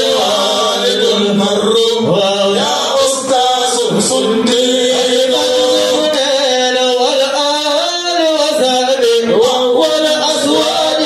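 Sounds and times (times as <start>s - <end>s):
man chanting into a microphone: 0.0s - 11.0s.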